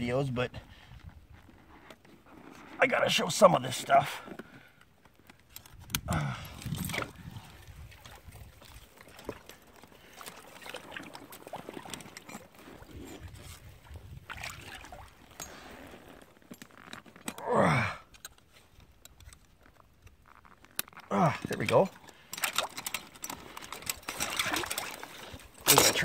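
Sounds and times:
short vocal grunt: 6.1s - 6.6s, 17.4s - 18.1s
water sloshing and trickling: 6.5s - 17.4s, 20.4s - 26.0s.

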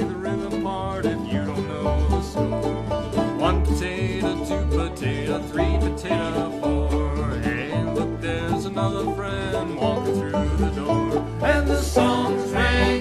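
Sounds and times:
person singing: 0.0s - 2.6s, 3.3s - 13.0s
string band playing: 0.0s - 13.0s.

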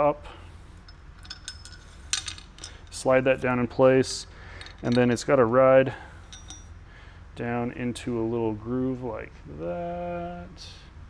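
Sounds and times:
metal clink: 0.8s - 3.0s, 4.1s - 5.4s, 6.2s - 6.8s.

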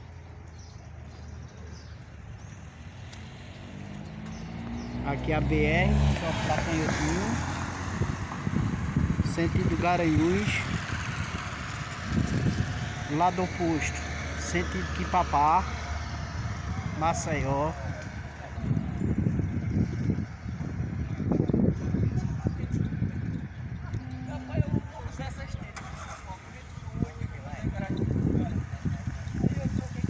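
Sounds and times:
indistinct voices talking: 0.0s - 30.0s
low street rumble: 0.0s - 30.0s
vehicle passing on highway: 1.4s - 30.0s.

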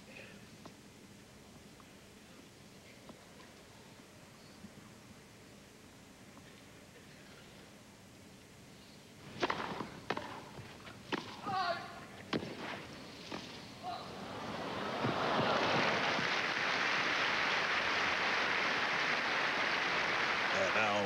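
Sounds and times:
tennis ball hit by racquet: 9.3s - 11.5s
crowd applause: 14.1s - 21.0s.

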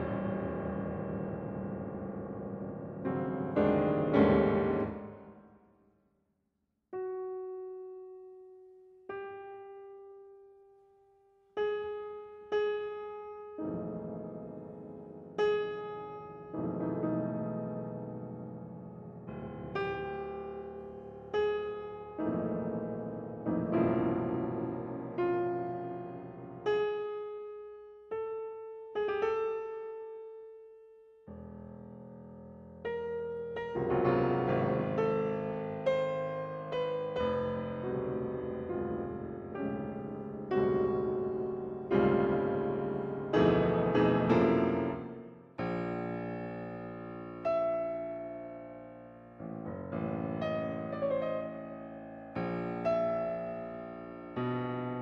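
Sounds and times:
grand piano playing: 0.0s - 5.1s, 13.6s - 26.9s, 32.8s - 55.0s.

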